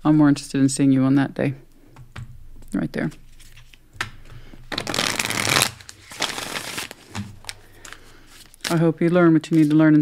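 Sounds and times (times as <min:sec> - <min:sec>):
tap on cards: 0:01.9 - 0:02.3, 0:04.0 - 0:04.6
cards shuffling: 0:03.0 - 0:10.0.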